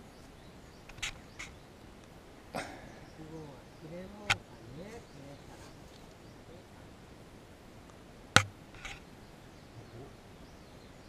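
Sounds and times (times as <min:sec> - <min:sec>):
person coughing: 0:02.6 - 0:02.9.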